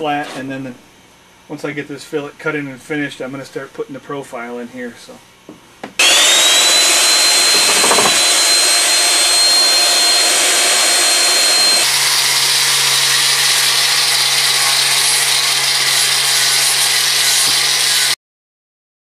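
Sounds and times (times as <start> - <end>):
belt sander on wood: 6.0 - 18.2
power tool grinding wood: 6.0 - 18.2.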